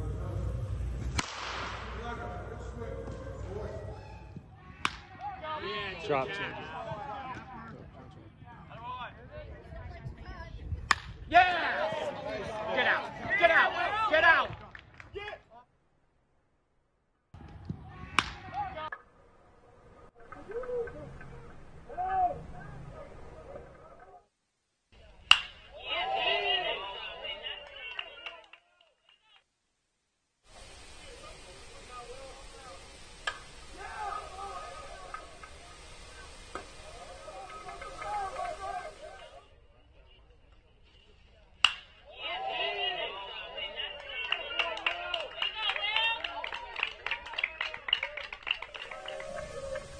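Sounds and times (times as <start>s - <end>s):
bat cracking a ball: 0.8s - 2.6s, 4.8s - 5.2s, 10.9s - 11.2s, 17.4s - 18.6s, 25.2s - 25.7s, 41.6s - 42.0s.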